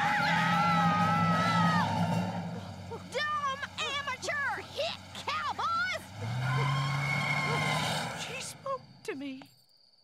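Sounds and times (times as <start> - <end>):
car engine starting and running: 0.0 - 9.1.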